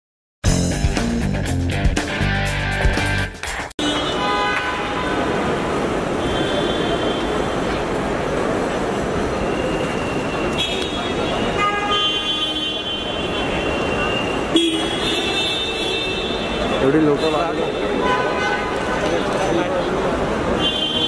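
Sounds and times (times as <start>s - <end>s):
road traffic noise: 0.5s - 21.0s
car horns honking: 3.8s - 5.5s, 9.8s - 19.2s, 20.6s - 21.0s.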